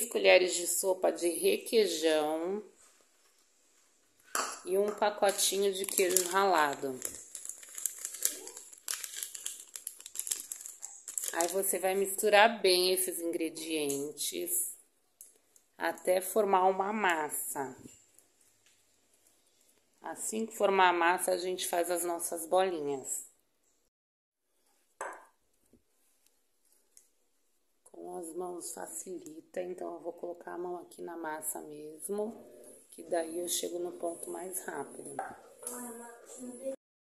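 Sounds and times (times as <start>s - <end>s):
plastic packet crinkling: 5.2s - 12.2s
spatula knocking glass bowl: 25.0s - 25.3s.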